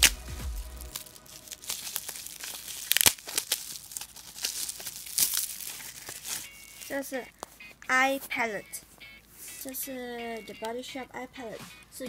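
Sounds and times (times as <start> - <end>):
bubble wrap crinkling: 0.0 - 10.8.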